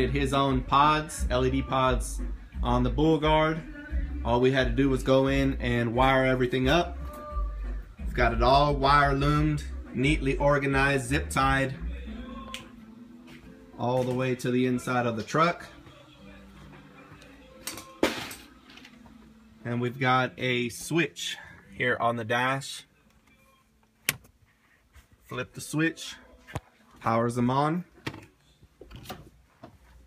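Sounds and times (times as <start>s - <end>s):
footsteps on concrete floor: 13.2s - 14.4s.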